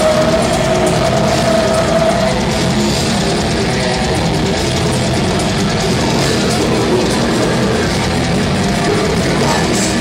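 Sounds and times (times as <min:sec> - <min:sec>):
death metal band playing: 0:00.0 - 0:10.0
distorted electric guitars: 0:00.0 - 0:10.0
drums: 0:00.0 - 0:10.0.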